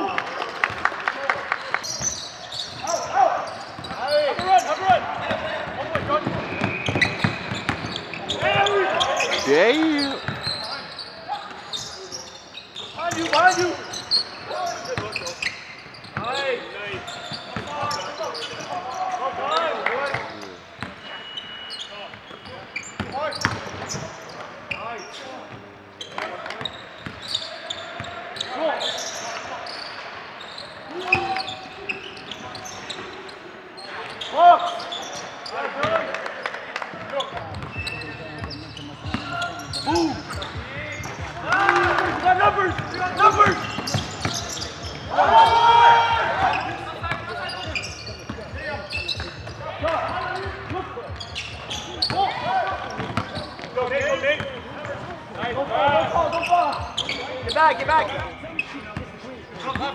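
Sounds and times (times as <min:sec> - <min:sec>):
players shouting: 0:08.0 - 0:11.6, 0:39.0 - 0:48.1.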